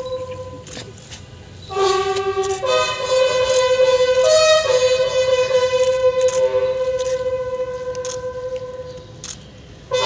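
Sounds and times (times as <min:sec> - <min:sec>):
ceremonial music on wind instruments: 0:00.0 - 0:00.9, 0:01.7 - 0:09.2, 0:09.8 - 0:10.0.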